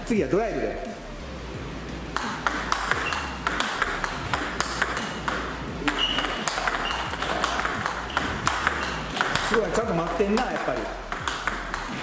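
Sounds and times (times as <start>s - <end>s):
table tennis ball clicks: 2.2s - 12.0s.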